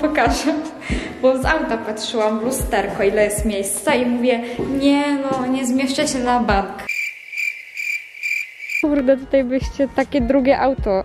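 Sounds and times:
cricket chirping: 6.9 - 8.9.

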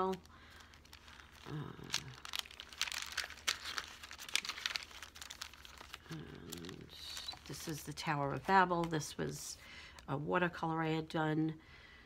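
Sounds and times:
book pages flipping: 0.0 - 9.2.

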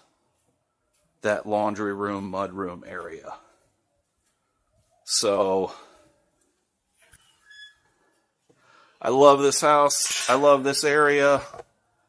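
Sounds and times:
gate hinge squeak: 7.1 - 7.8.

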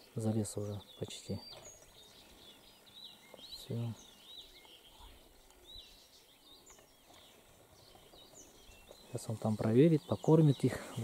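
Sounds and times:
faint bird chirps: 0.0 - 11.0.

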